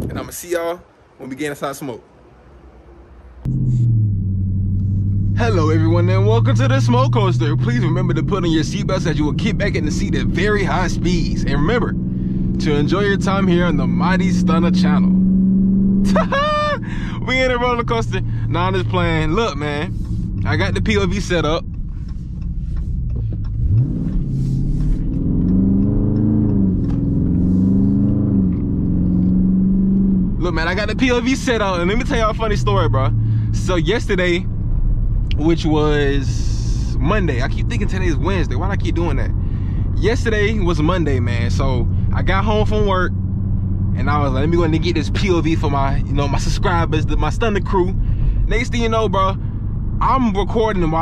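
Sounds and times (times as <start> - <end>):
car engine cruising drone: 1.0 - 51.0.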